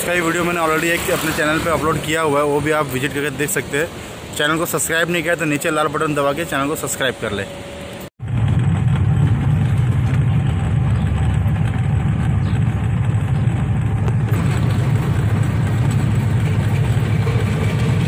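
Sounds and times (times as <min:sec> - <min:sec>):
road noise: 0:00.0 - 0:18.0
vehicle engine drone: 0:06.0 - 0:18.0.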